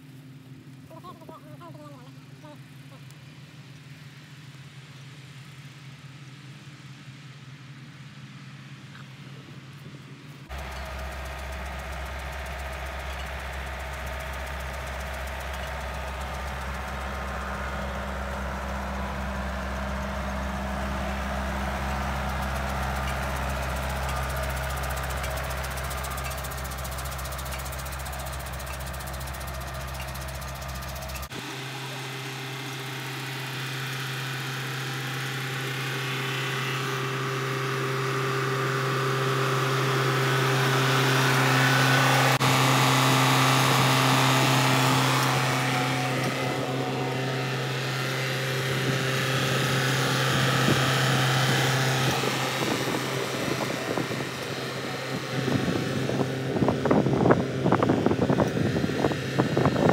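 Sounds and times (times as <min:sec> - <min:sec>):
tractor engine running: 0:00.0 - 0:59.9.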